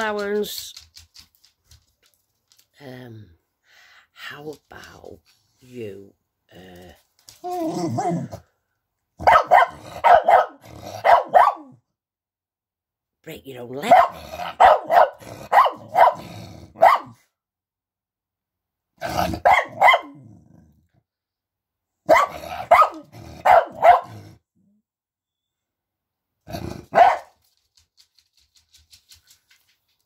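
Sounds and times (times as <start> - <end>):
dog barking: 9.2 - 11.8, 13.8 - 17.2, 19.1 - 20.2, 22.0 - 24.2, 26.9 - 27.4.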